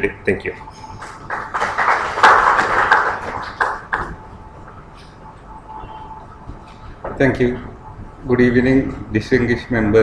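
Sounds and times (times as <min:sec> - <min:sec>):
audience applauding: 0:01.0 - 0:04.2.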